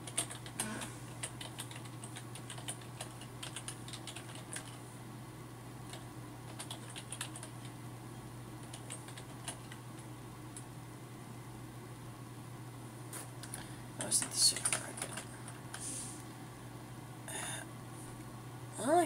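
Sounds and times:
computer keyboard typing: 0:00.0 - 0:04.8, 0:05.9 - 0:07.8, 0:08.6 - 0:09.8, 0:13.4 - 0:15.7.

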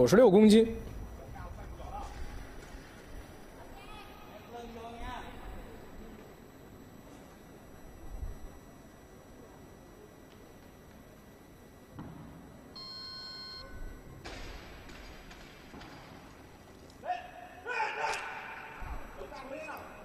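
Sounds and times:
short electronic beep: 0:12.8 - 0:14.1
people shouting: 0:17.0 - 0:18.8.

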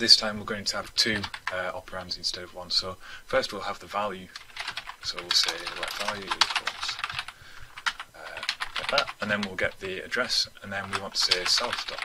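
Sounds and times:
typing on a keyboard: 0:01.1 - 0:02.1, 0:04.3 - 0:10.0, 0:10.8 - 0:12.0.

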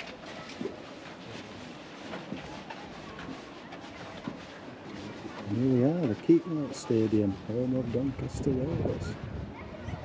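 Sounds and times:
soft footsteps of a group: 0:00.0 - 0:08.2.

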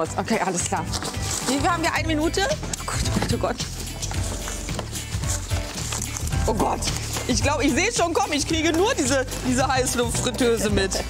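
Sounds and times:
background music with bass line: 0:00.0 - 0:11.0
goods rustling and knocking: 0:00.7 - 0:11.0.

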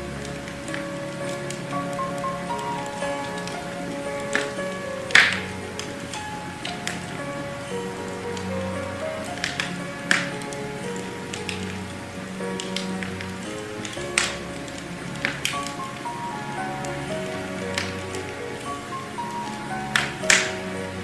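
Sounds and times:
instrumental background music: 0:00.0 - 0:21.0.

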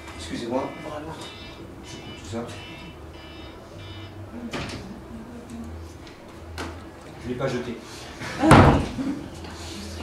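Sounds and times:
door slamming: 0:08.4 - 0:09.0.

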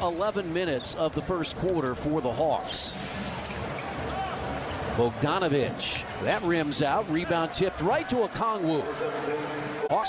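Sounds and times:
arena crowd hubbub: 0:00.0 - 0:10.0
sneakers squeaking on court: 0:00.1 - 0:05.0.

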